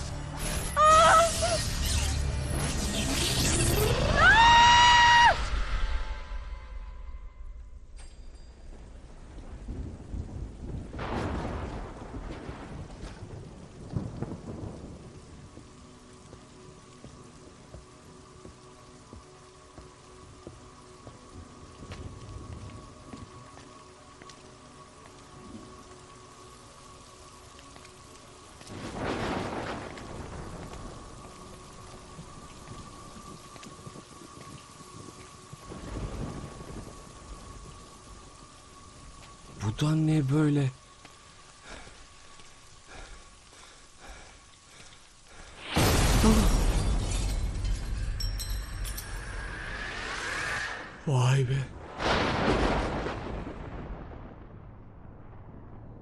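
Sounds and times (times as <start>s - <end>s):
steady rain falling: 0.0s - 56.0s
thunder rolling: 9.1s - 15.6s, 28.7s - 38.4s, 51.6s - 56.0s.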